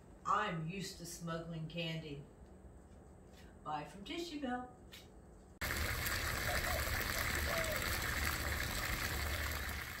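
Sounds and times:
water splashing and trickling: 0:05.6 - 0:10.0.

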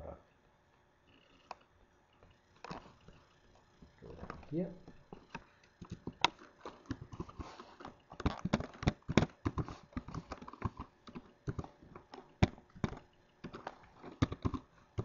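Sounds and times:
typing on computer keyboard: 0:05.1 - 0:15.0.

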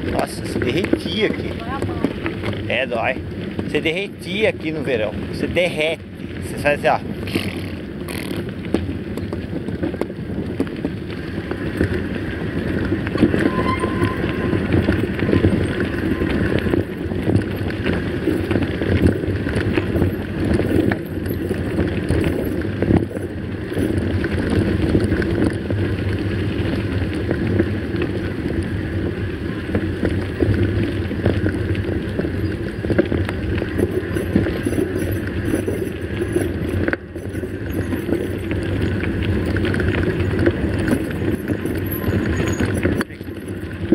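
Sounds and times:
bike rattling over bumps: 0:00.0 - 0:43.9.

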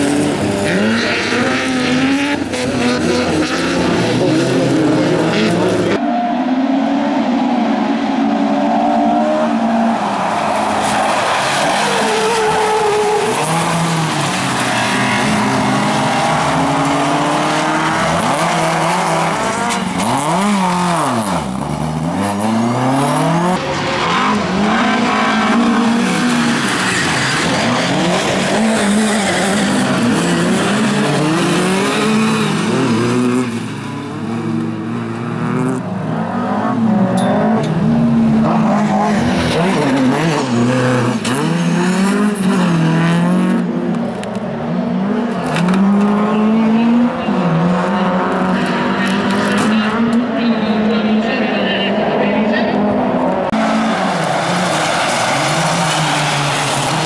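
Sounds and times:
race car engines revving: 0:00.0 - 0:57.0
tyres sliding on gravel: 0:10.2 - 0:23.0, 0:53.6 - 0:57.0.

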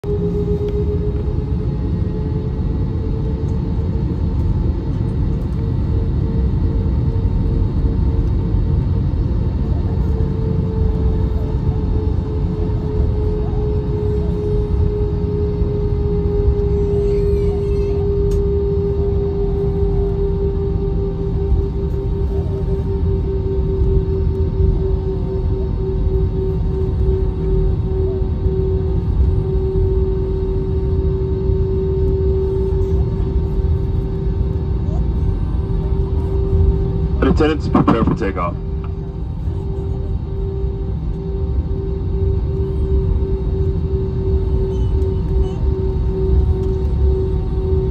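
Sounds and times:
droning tone: 0:00.0 - 0:47.9
jet engines rumbling: 0:00.0 - 0:47.9.

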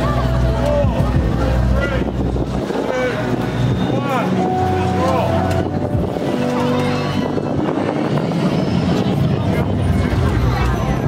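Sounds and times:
low electronic drone: 0:00.0 - 0:11.0.

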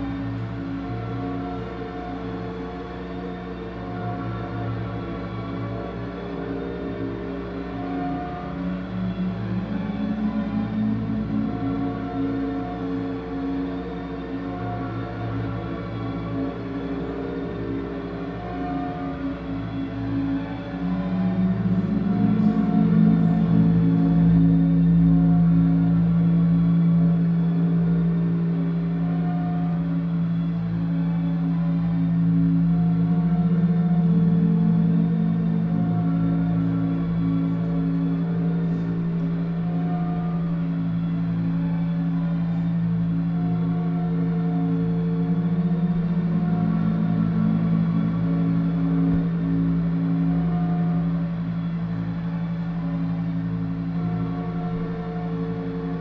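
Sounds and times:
electronic drone music: 0:00.0 - 0:56.0.

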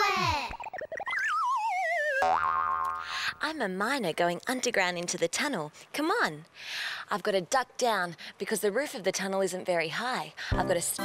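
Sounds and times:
cartoon wobbling tone sliding down: 0:00.5 - 0:02.6.

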